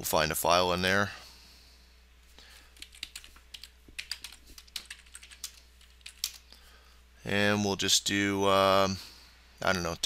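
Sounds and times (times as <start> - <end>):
typing on computer keyboard: 2.8 - 6.4.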